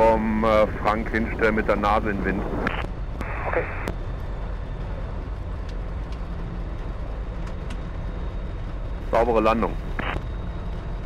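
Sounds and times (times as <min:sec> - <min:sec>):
aircraft engine droning: 0:00.0 - 0:11.0
voice over radio: 0:03.2 - 0:03.9.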